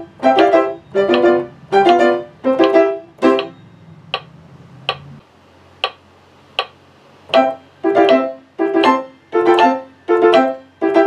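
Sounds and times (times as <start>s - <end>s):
piano playing: 0.0s - 3.8s, 7.3s - 11.0s
metronome ticking: 0.0s - 5.2s, 5.8s - 6.0s, 6.6s - 11.0s.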